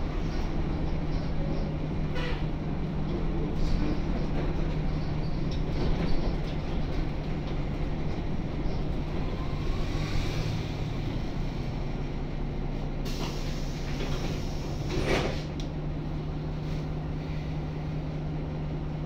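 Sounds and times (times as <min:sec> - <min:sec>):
diesel bus engine drone: 0:00.0 - 0:19.0
hiss: 0:13.1 - 0:15.5.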